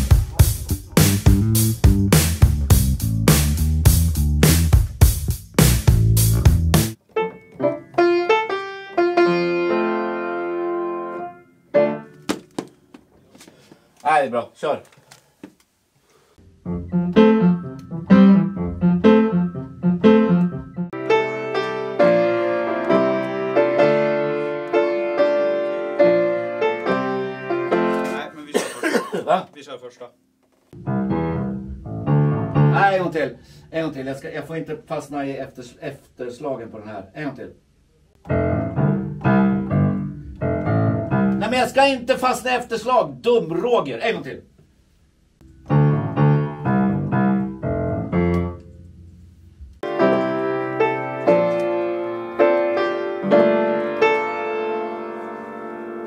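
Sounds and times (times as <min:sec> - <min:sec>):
band music with drums and bass: 0:00.0 - 0:07.0
piano chords: 0:06.0 - 0:12.3, 0:16.4 - 0:28.3, 0:30.8 - 0:33.1, 0:38.2 - 0:41.7, 0:45.4 - 0:49.1, 0:49.7 - 0:56.0.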